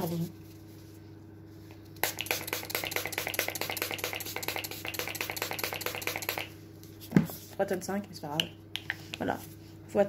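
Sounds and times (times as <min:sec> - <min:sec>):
quick spray bursts: 0:02.0 - 0:06.5.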